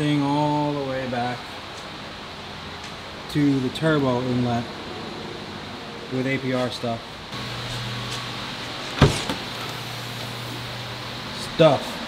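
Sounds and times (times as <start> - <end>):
ventilation fans humming: 0.0 - 12.0.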